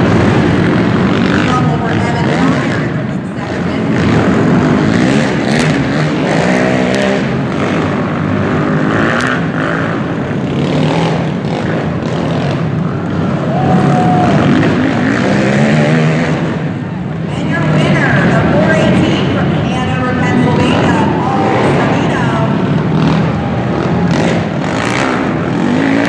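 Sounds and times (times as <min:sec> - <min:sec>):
quad engines revving: 0:00.0 - 0:26.0.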